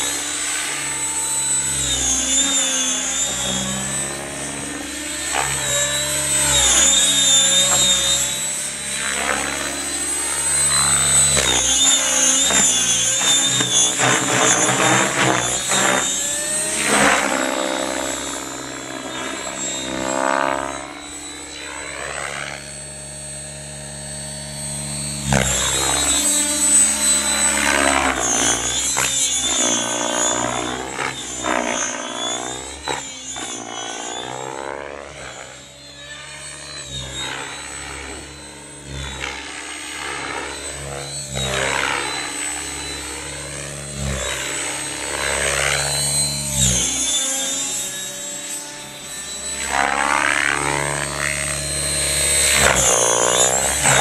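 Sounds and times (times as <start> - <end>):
radio-controlled helicopter rotor: 0.0 - 54.0
steady high whine: 0.0 - 54.0.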